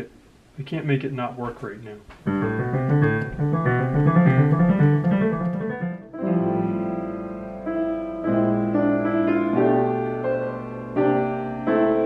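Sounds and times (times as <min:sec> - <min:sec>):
piano music: 0:02.2 - 0:12.0.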